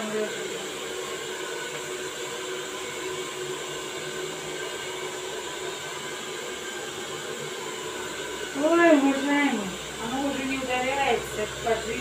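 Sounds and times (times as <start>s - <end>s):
hair dryer blowing: 0.0s - 12.0s.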